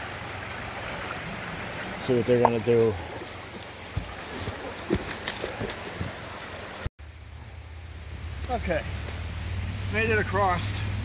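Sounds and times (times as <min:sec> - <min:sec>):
creek water rushing: 0:00.0 - 0:11.0.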